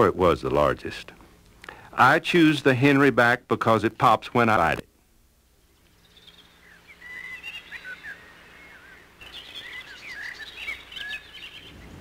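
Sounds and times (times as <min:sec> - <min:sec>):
birds chirping and whistling: 0:05.8 - 0:12.0.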